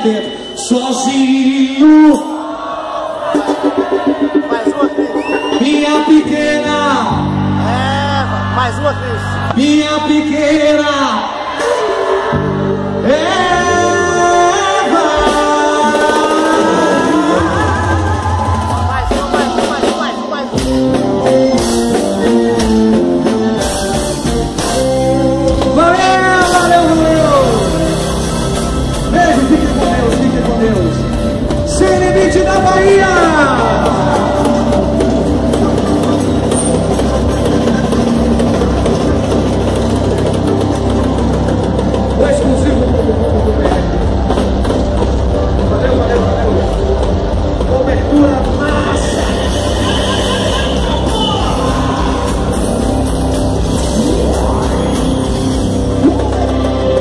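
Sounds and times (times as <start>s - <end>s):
drums: 0.0s - 57.0s
live band playing loudly: 0.0s - 57.0s
electric guitar riff: 11.6s - 57.0s
man singing long notes: 12.3s - 18.6s
heavy bass rumble: 20.6s - 57.0s.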